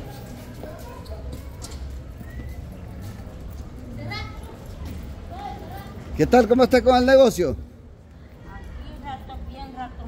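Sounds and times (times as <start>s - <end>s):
footsteps on pavement: 0.0s - 6.2s
faint voices: 0.0s - 10.0s
low rumble of street noise: 0.0s - 10.0s.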